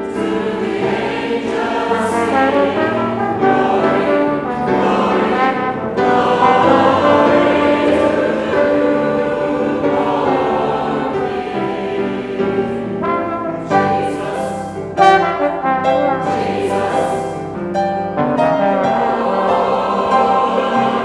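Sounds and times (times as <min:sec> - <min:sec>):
voices singing along: 0:00.0 - 0:17.6, 0:18.9 - 0:21.0
grand piano: 0:00.0 - 0:21.0
trombone: 0:01.6 - 0:09.7, 0:13.0 - 0:17.3, 0:18.2 - 0:19.9.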